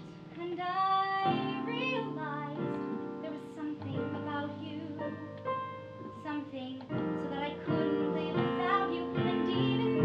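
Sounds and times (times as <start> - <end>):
woman singing a show tune: 0.0 - 10.0.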